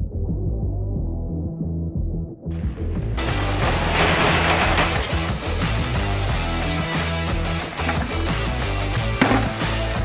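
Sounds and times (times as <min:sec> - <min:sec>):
garage door rolling open: 0:02.6 - 0:06.6
background music with low beat: 0:05.3 - 0:10.0.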